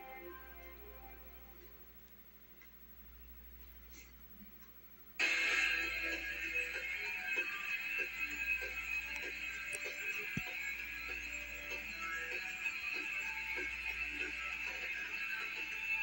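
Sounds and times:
music through television speaker: 0.0 - 2.0, 5.2 - 16.0.

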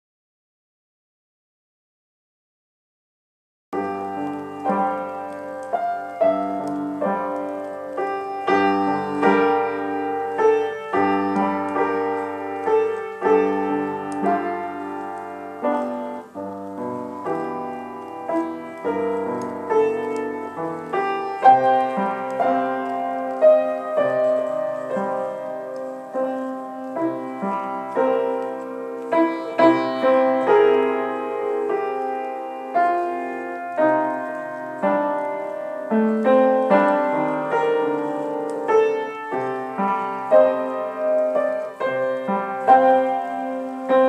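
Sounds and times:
solo piano improvisation: 3.8 - 44.0.

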